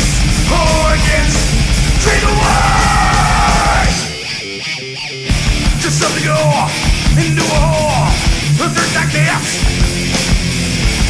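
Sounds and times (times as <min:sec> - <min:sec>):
heavy metal band playing: 0:00.0 - 0:11.0
person shouting vocals: 0:02.0 - 0:04.2.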